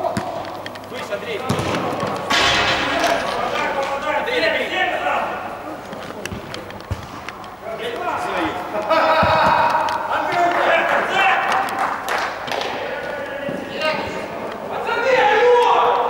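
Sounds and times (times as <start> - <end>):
ball being kicked: 1.4 - 2.1, 6.3 - 7.3
players shouting: 7.5 - 16.0.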